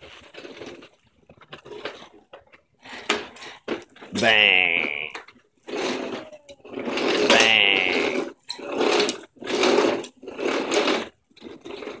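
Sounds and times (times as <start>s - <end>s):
person imitating engine buzz: 4.2s - 5.2s, 7.3s - 8.2s.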